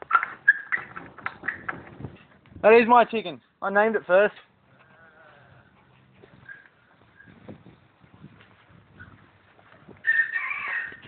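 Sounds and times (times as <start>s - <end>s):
chickens calling: 10.0s - 11.0s.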